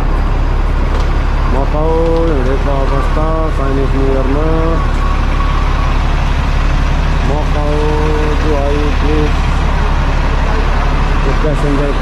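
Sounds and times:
bus engine rumbling: 0.0s - 12.0s.

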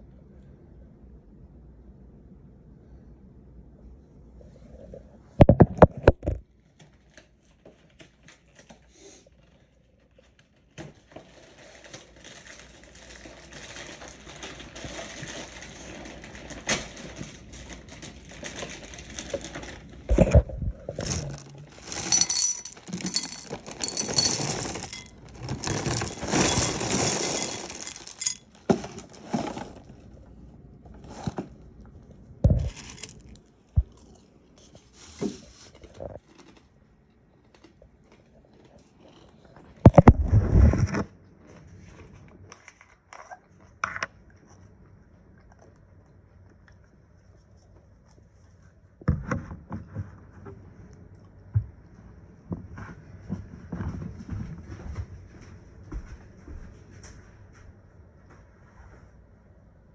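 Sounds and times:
plastic bag crinkling: 11.2s - 30.2s, 32.5s - 34.2s, 35.8s - 36.8s
granola pouring into bowl: 21.0s - 30.0s, 32.5s - 33.4s.

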